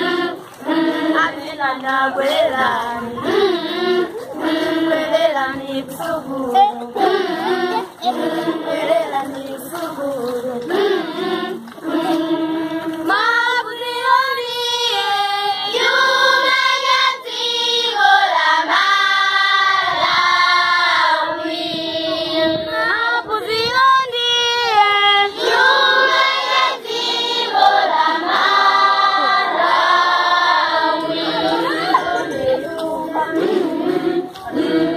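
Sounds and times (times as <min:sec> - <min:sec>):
children's choir singing: 0:00.0 - 0:34.9.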